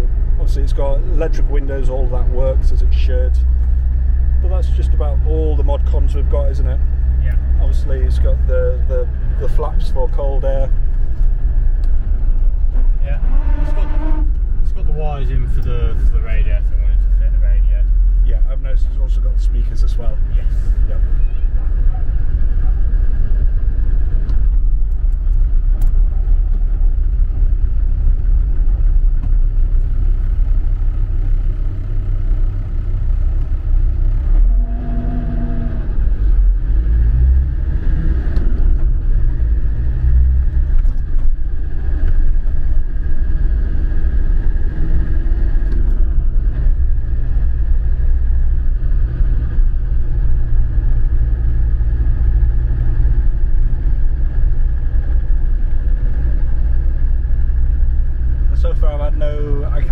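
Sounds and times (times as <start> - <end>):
diesel engine drone: 0.0 - 59.9
road rumble: 0.0 - 59.9.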